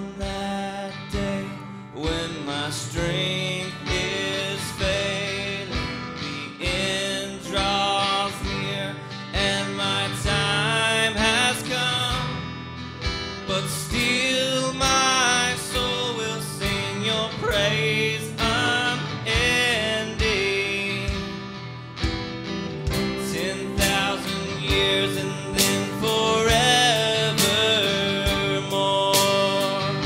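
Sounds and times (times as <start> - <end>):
man singing: 0.0 - 12.6, 13.4 - 21.7, 22.9 - 30.0
electric guitar: 0.0 - 30.0
steady beat: 19.4 - 28.5.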